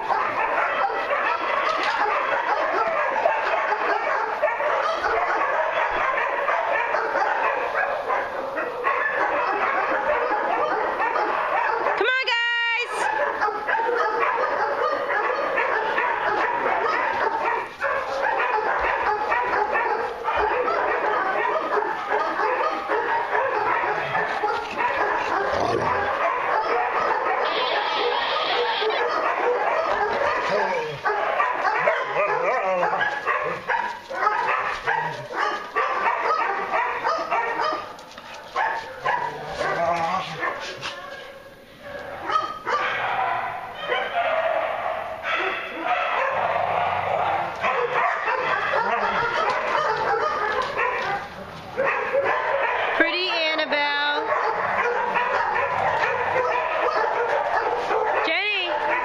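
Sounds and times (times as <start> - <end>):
dogs barking and yapping: 0.0 - 59.0.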